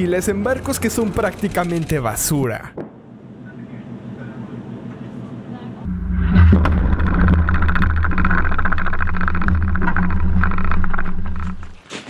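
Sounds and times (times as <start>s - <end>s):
low rumble with crackling: 5.8s - 11.8s.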